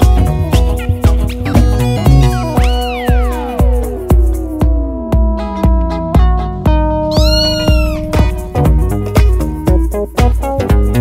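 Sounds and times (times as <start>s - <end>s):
cat meow: 7.1s - 8.4s
electronic dance music: 7.1s - 9.0s.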